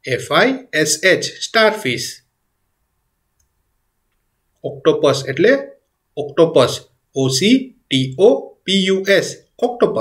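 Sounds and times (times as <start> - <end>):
person speaking: 0.0 - 2.3, 4.5 - 10.0
faint clicks: 3.4 - 4.3.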